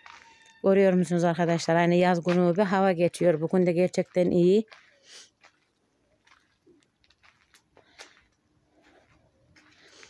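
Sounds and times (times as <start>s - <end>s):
faint scuffs and clicks: 4.7s - 10.0s.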